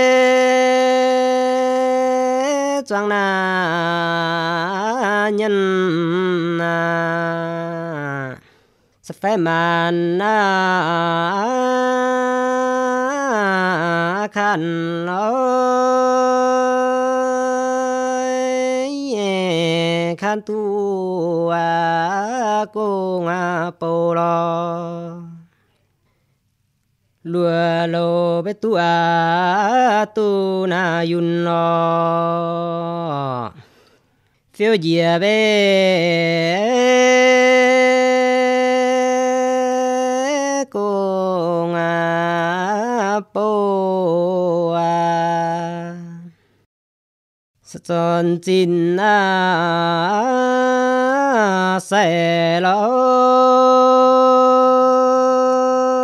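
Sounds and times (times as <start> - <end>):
man singing unaccompanied: 0.0 - 25.5, 27.2 - 46.4, 47.6 - 56.0
quick breath: 8.4 - 9.0, 33.5 - 34.4.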